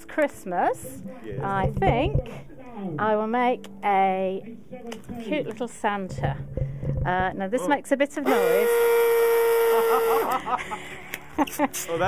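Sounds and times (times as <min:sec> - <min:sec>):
electric balloon inflator humming: 0:08.2 - 0:10.4
people laughing: 0:09.6 - 0:12.0.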